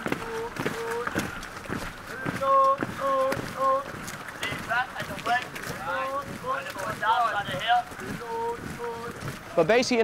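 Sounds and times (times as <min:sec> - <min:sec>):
long held call: 0:00.0 - 0:09.4
shouted voices: 0:00.0 - 0:10.0.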